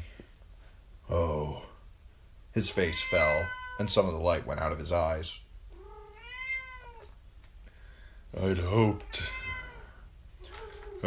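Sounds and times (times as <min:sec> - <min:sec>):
cat meowing: 0:02.9 - 0:03.9, 0:05.7 - 0:07.2, 0:09.1 - 0:11.0.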